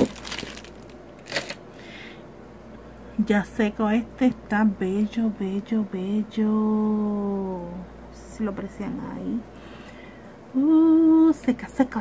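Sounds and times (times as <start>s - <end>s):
plastic bag crinkling: 0.0s - 1.8s.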